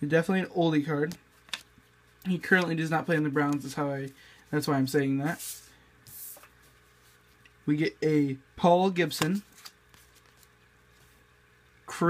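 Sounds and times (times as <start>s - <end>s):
low steady hum: 0.0s - 12.0s
trading cards sliding and flicking: 1.0s - 7.6s, 9.0s - 11.3s
man speaking: 2.2s - 5.6s.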